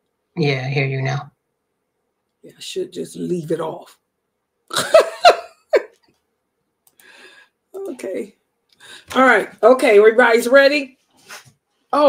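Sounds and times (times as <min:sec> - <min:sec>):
woman laughing: 0:04.7 - 0:06.0.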